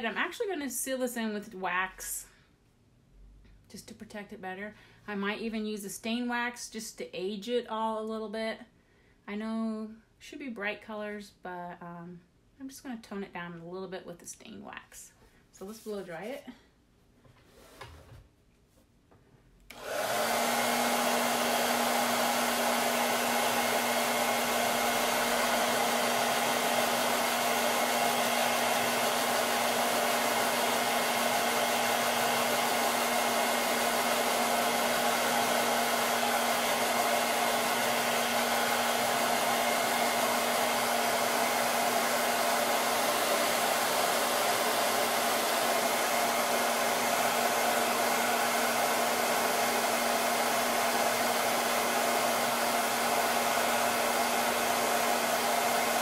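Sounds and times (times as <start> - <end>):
blow dryer running: 19.7 - 56.0.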